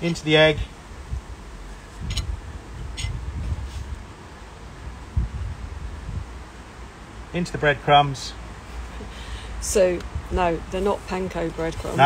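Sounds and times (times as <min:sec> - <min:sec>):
wind rumble on microphone: 0:00.4 - 0:06.9, 0:09.7 - 0:12.0.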